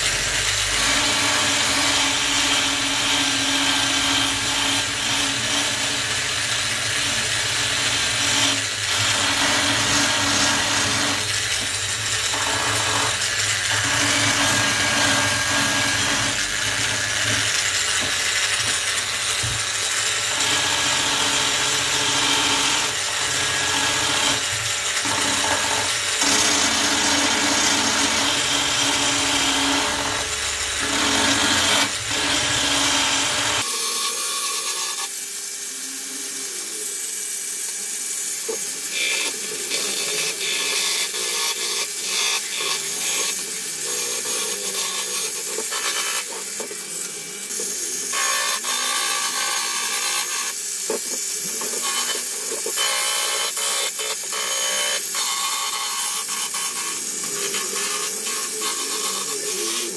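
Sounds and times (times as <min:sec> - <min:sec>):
belt sander grinding metal: 0:00.0 - 0:59.9.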